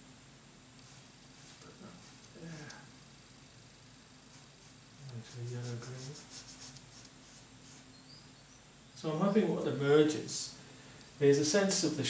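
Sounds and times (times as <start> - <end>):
paint brush strokes on paper: 0.8 - 2.4, 4.2 - 8.5.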